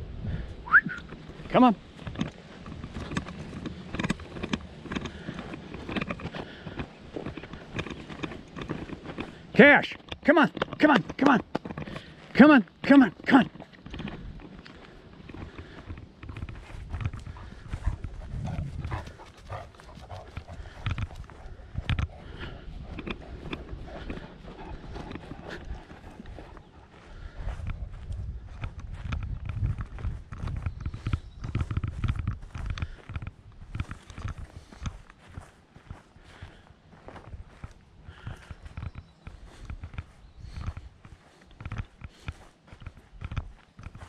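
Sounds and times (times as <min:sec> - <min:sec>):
footsteps on grass and dirt: 0:00.0 - 0:44.0
low rumble: 0:16.5 - 0:19.5.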